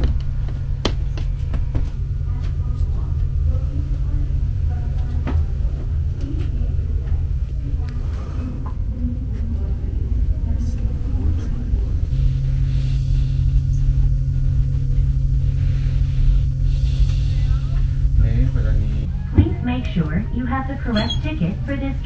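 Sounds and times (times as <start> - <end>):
machinery hum: 0.0 - 22.0
train car rumble: 0.0 - 22.0.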